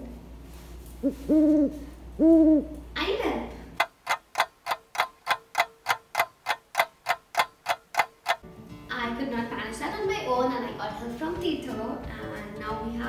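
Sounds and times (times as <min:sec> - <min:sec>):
clock ticking: 0:03.8 - 0:08.4.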